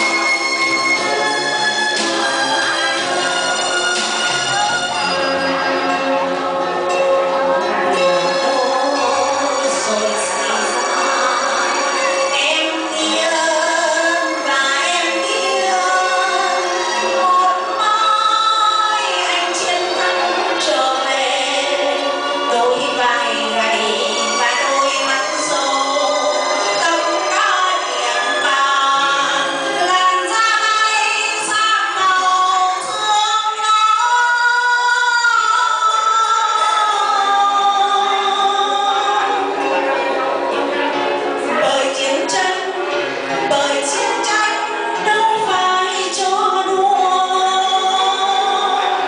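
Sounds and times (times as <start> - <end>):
woman singing into microphone: 7.9 - 39.8, 41.4 - 49.0.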